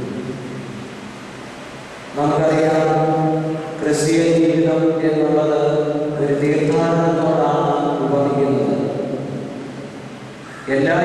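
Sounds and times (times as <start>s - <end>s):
microphone background hiss: 0.0s - 11.0s
man chanting: 10.5s - 11.0s.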